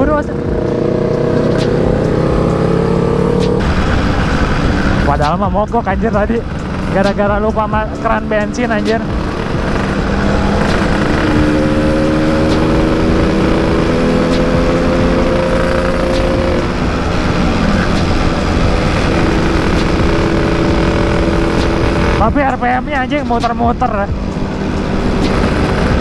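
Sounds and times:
motorcycle engine cruising: 0.0s - 26.0s.

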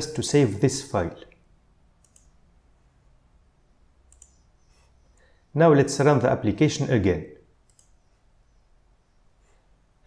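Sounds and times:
faint computer clicks: 1.3s - 2.4s, 4.1s - 5.4s, 7.6s - 8.1s.

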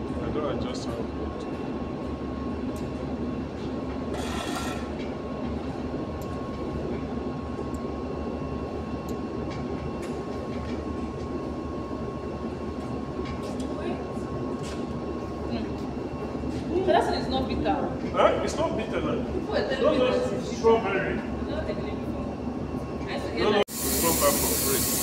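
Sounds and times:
espresso machine humming: 23.6s - 25.0s.

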